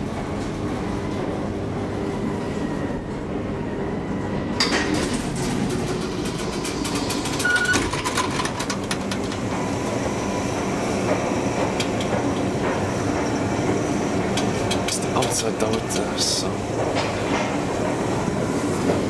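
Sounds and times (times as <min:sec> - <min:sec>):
elevator rumble and hum: 0:00.0 - 0:19.0
short beep: 0:07.4 - 0:07.8
sharp clicks and knocks: 0:11.1 - 0:16.1.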